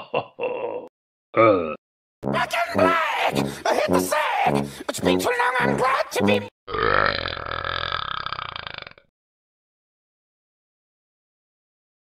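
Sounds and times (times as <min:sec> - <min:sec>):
long cartoon burp: 0:00.4 - 0:01.8, 0:06.7 - 0:09.1.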